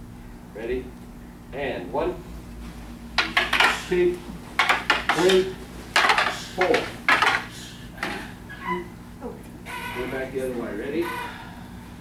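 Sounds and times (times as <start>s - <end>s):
wooden practice swords clacking: 3.2s - 3.9s, 4.6s - 8.2s.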